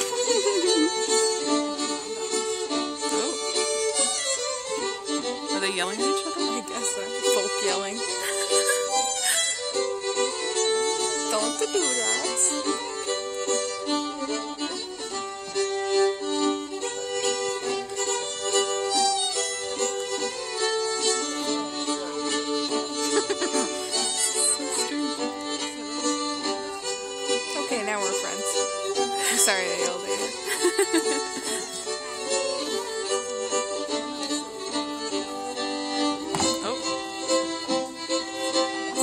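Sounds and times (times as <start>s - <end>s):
fiddlers playing folk dance tune: 0.0s - 39.0s.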